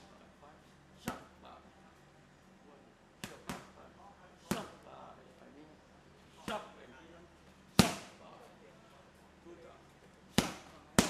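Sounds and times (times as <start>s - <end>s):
gloved punches hitting focus mitts: 3.2s - 3.7s, 4.5s - 4.8s, 7.8s - 8.2s, 10.3s - 11.0s.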